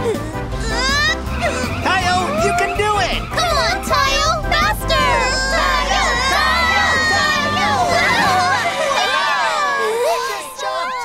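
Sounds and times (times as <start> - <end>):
background music: 0.0 - 11.0
cartoon children cheering and shouting: 0.6 - 11.0.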